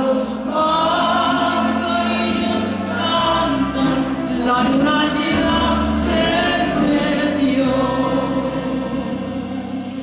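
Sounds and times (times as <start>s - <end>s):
live instrumental accompaniment: 0.0s - 10.0s.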